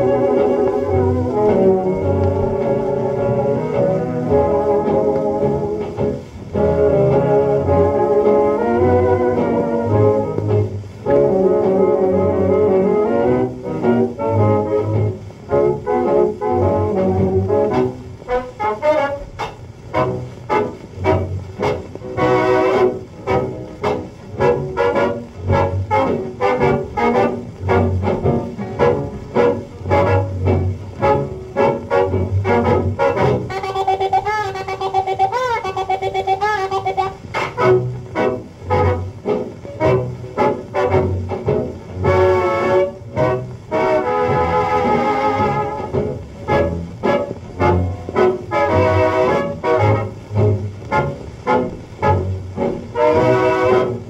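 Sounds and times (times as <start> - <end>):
old record of dance band: 0.0 - 54.0
muted trumpet: 11.1 - 54.0.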